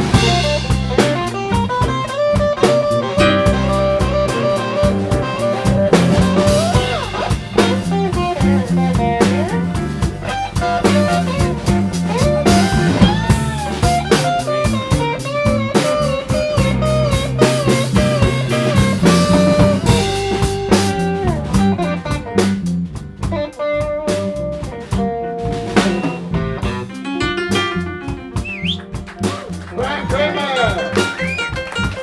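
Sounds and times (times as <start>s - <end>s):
harmonica bending notes: 0.0s - 22.2s, 25.8s - 29.0s
blues band playing: 0.0s - 32.0s.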